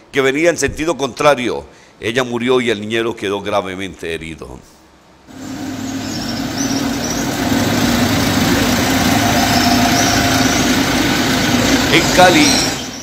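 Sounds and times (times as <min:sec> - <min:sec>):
street rumble: 0:05.3 - 0:13.0
vehicle engine idling: 0:05.3 - 0:13.0
faint high chirps: 0:09.0 - 0:13.0.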